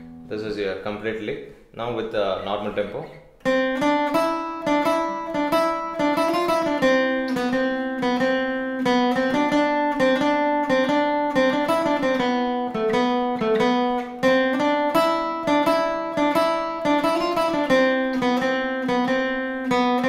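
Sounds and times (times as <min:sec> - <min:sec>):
acoustic guitar lead lick: 0:00.0 - 0:00.3, 0:03.0 - 0:20.0.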